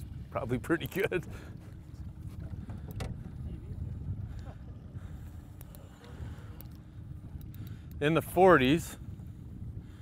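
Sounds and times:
water lapping against boat hull: 0:00.0 - 0:08.0
wind rumbling on microphone: 0:00.0 - 0:10.0.

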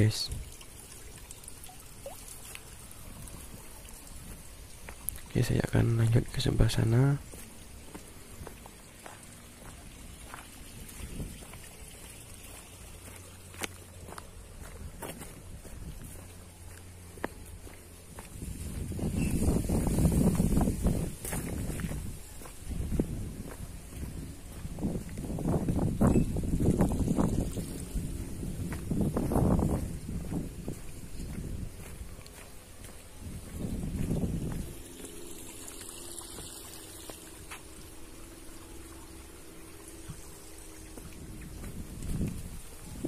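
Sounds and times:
footsteps on dirt path: 0:02.4 - 0:43.0
wind gusts on microphone: 0:10.6 - 0:11.7, 0:18.2 - 0:35.0, 0:41.0 - 0:43.0.

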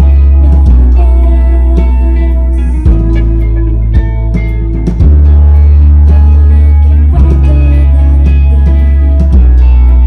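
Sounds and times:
electric guitars: 0:00.0 - 0:10.0
rock band playing: 0:00.0 - 0:10.0.

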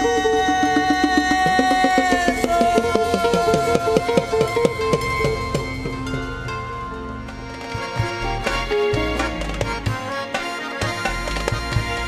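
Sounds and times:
band playing held chord: 0:00.0 - 0:12.0.

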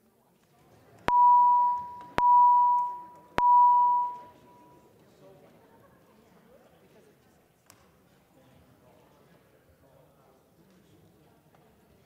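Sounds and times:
ringing chime tones: 0:01.2 - 0:04.6.

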